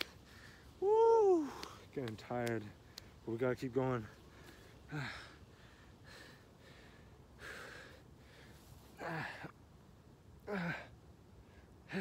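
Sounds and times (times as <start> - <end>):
man breathing hard: 0.0 - 0.8, 4.3 - 9.6
man gasping: 4.9 - 8.0.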